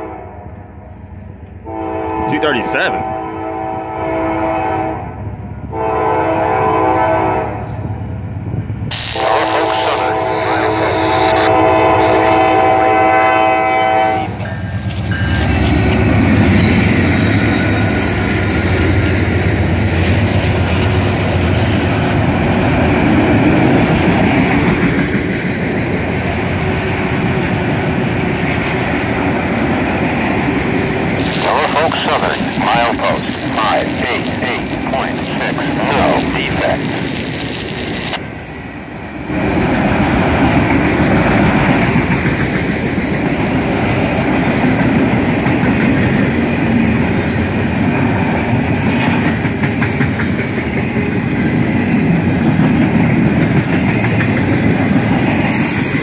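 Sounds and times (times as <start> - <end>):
locomotive air horn blasts: 1.7 - 5.1, 5.7 - 7.7, 8.9 - 14.4
locomotives rumbling past: 30.8 - 38.4.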